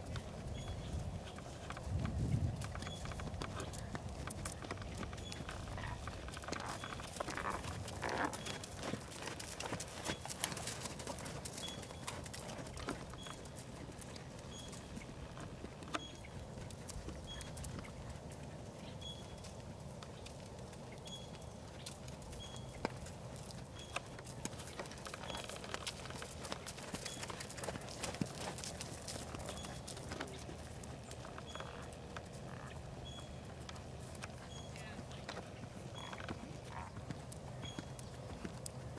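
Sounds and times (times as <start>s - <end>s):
horse hooves cantering on sand: 0.0s - 38.9s.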